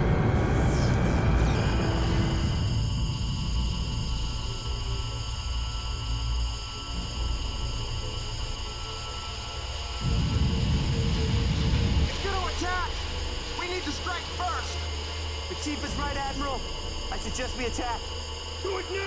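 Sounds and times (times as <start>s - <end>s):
heavy rumble: 0.0s - 18.6s
high multi-toned ringing drone: 0.0s - 19.0s.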